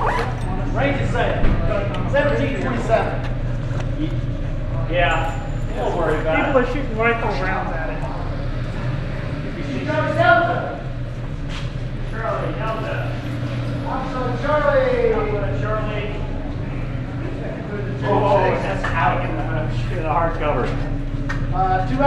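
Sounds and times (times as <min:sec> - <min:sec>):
low hum: 0:00.0 - 0:22.0
men talking indistinctly: 0:00.0 - 0:22.0.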